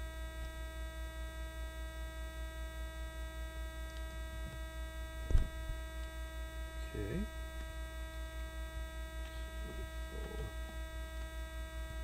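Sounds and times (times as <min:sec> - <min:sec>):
electrical mains hum: 0:00.0 - 0:12.0
pulsing low buzz: 0:00.0 - 0:12.0.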